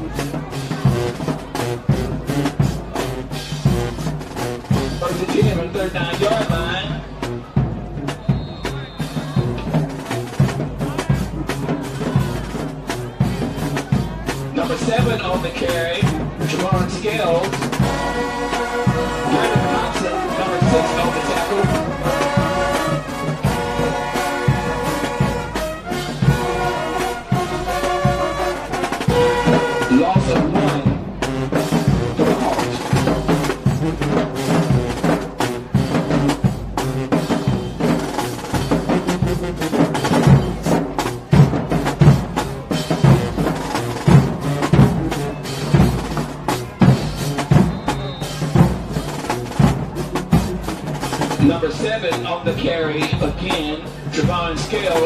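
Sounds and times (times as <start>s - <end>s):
brass band music with drums: 0.0s - 55.0s.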